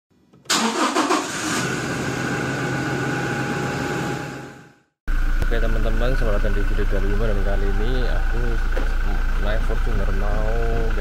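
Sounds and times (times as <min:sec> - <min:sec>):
car engine starting and idling: 0:00.4 - 0:04.2, 0:05.1 - 0:11.0.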